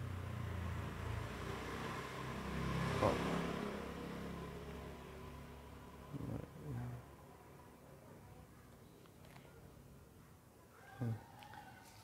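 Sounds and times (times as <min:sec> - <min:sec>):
passing vehicle engine: 0:00.0 - 0:07.3.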